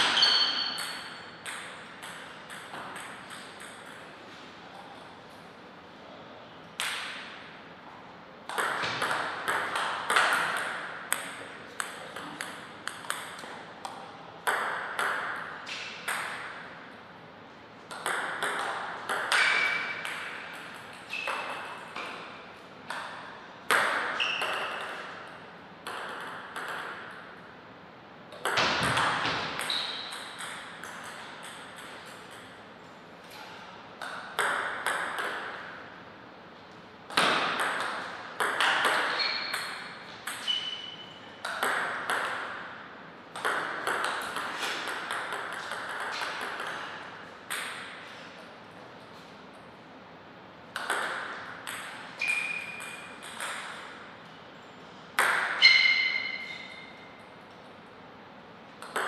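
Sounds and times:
ball bouncing on table: 0.0 - 4.0, 8.5 - 16.6, 17.9 - 25.1, 25.8 - 27.4, 28.3 - 32.5, 34.0 - 35.8, 37.1 - 42.7, 43.4 - 48.0, 50.8 - 53.9, 55.2 - 56.9, 58.8 - 59.0
table tennis paddle strikes: 0.0 - 4.1, 6.8 - 7.5, 8.5 - 16.7, 17.9 - 27.4, 28.3 - 32.6, 34.0 - 35.8, 37.1 - 48.2, 50.7 - 54.0, 55.2 - 57.2, 58.8 - 59.0.

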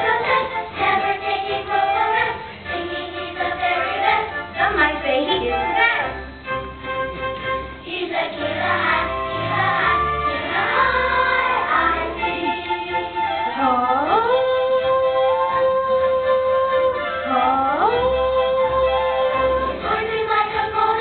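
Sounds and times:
children's choir singing: 0.0 - 6.3, 7.5 - 21.0.

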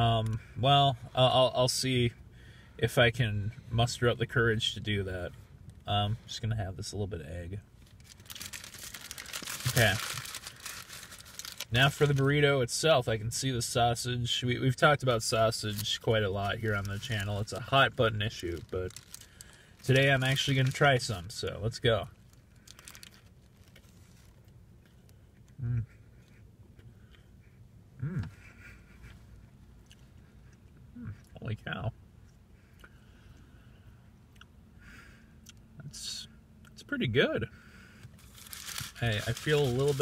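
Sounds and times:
paper wrapper crinkling: 7.8 - 12.4, 15.6 - 24.5, 38.2 - 40.0
man humming: 25.6 - 26.0, 28.0 - 28.4
man chewing with mouth closed: 29.4 - 31.4, 32.2 - 33.5.

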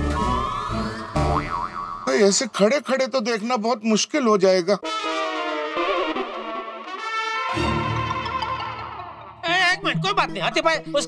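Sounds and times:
comedic background music: 0.0 - 2.3, 4.8 - 11.0
wobbling boing effect: 1.0 - 2.1.

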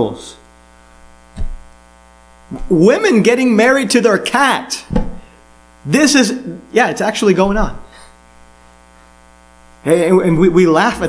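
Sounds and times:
electrical mains hum: 0.0 - 11.0
man's voice: 9.9 - 11.0.

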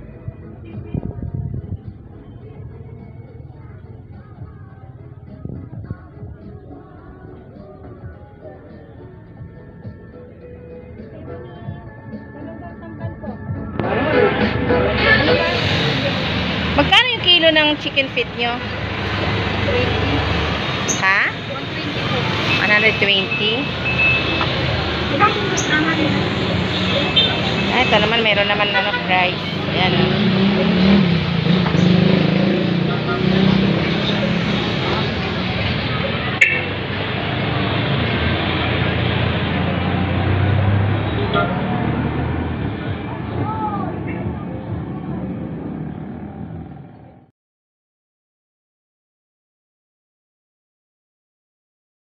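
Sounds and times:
street traffic noise: 0.0 - 47.3
voices: 10.9 - 38.1, 39.8 - 46.0.

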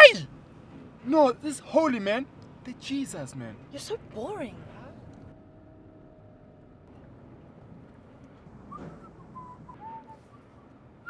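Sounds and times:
man whistling softly: 8.7 - 10.7.

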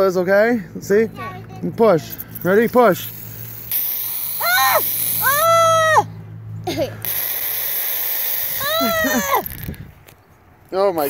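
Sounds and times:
aerosol can spraying: 2.9 - 5.5, 7.0 - 9.6
high-pitched yell: 4.4 - 6.1, 8.6 - 9.6.

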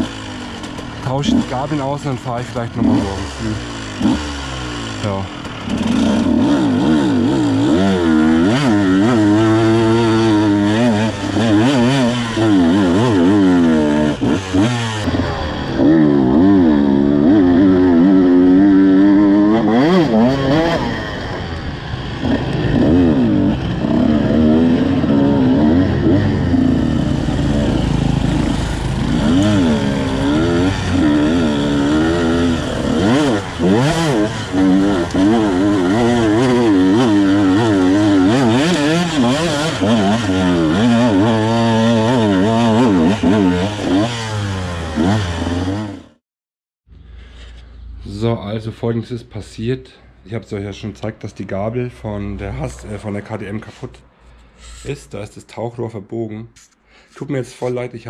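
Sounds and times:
two-stroke motorcycle engine revving: 0.0 - 46.2.

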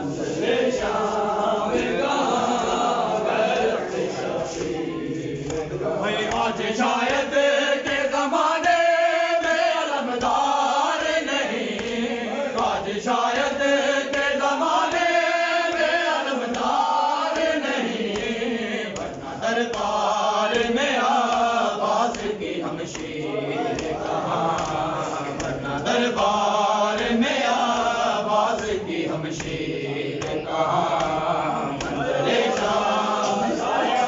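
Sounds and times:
men chanting a mourning lament: 0.0 - 34.0.

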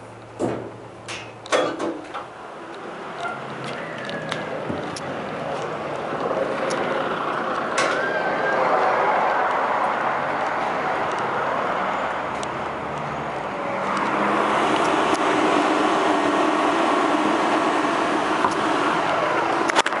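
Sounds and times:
road traffic passing: 0.0 - 20.0
car passing by: 5.4 - 19.9.

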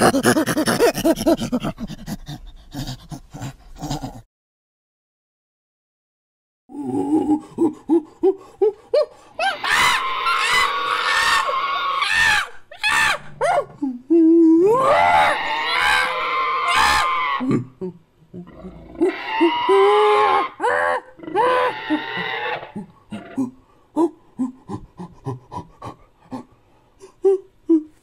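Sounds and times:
ape-like creature screams: 9.4 - 13.4, 14.7 - 17.5, 19.0 - 23.4.

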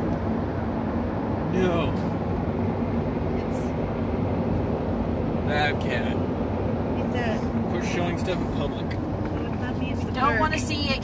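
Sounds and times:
car engine and tyre drone: 0.0 - 11.0.

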